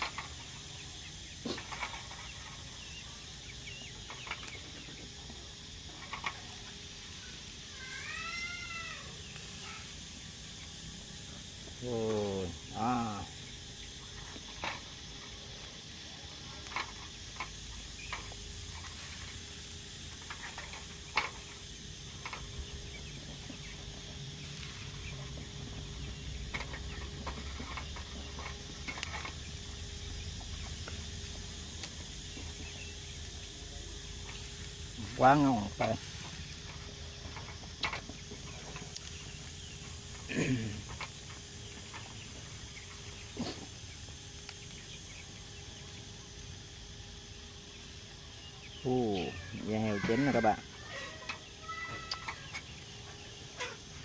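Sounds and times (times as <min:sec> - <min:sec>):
chickens calling: 0:00.0 - 0:54.0.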